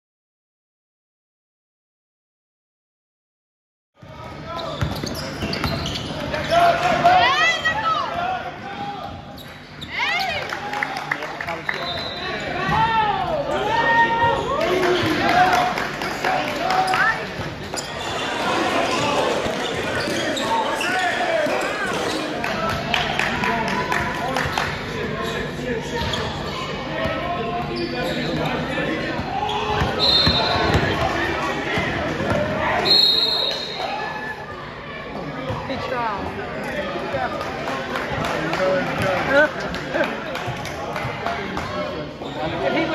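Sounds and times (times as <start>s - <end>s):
voices in reverberant hall: 4.0s - 42.9s
sneaker squeaks: 4.4s - 6.8s, 9.1s - 10.4s, 11.7s - 12.9s, 16.8s - 22.4s, 25.2s - 31.1s, 42.1s - 42.9s
basketball bouncing on court: 29.2s - 31.1s, 31.8s - 32.6s.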